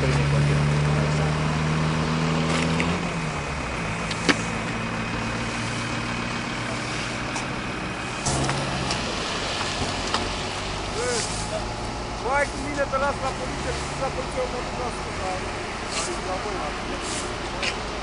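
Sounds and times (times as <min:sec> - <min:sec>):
vehicle engine idling: 0:03.0 - 0:18.0.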